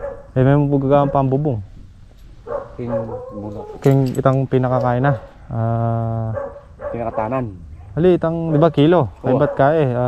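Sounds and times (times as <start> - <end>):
man talking: 0.4 - 1.7, 2.6 - 10.0.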